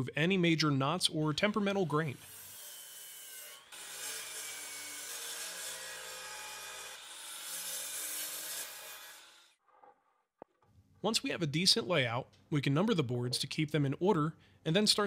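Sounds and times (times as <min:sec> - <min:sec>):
miter saw cutting wood: 0:01.3 - 0:09.5.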